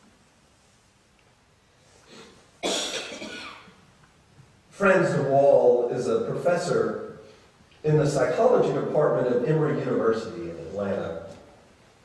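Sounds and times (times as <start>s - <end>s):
person coughing: 2.1s - 3.8s.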